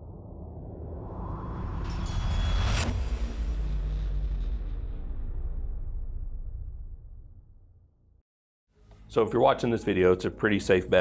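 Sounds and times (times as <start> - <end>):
deep rumble: 0.0 - 8.2.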